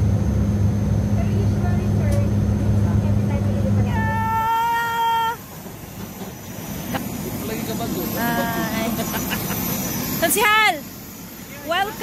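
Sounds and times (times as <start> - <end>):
open-air background: 0.0 - 12.0
turboprop cabin drone: 0.0 - 12.0.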